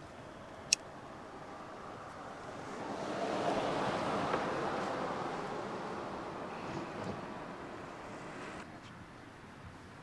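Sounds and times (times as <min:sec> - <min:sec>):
rushing outdoor noise: 0:00.0 - 0:10.0.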